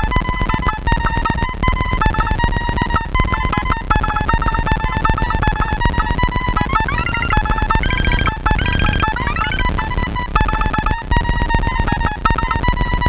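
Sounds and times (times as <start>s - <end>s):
fast noise clicks: 0.0s - 13.0s
pulsing electronic beeps: 4.1s - 11.0s.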